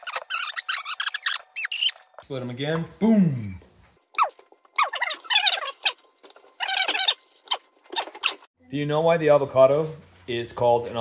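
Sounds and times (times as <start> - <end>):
knife slicing avocado squeaks: 0.0 - 2.1, 4.2 - 8.5.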